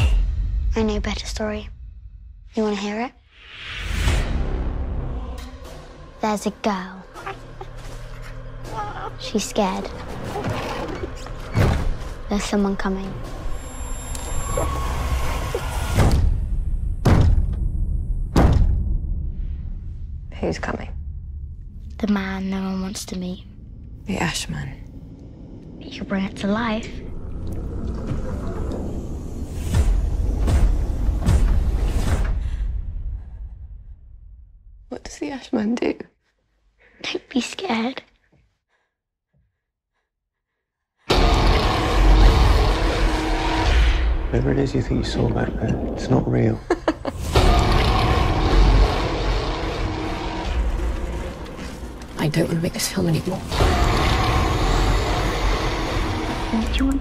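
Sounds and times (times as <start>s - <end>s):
low rumbling drone: 11.0s - 34.6s, 41.1s - 57.0s
dense roar with deep rumble: 47.3s - 52.2s, 53.4s - 57.0s.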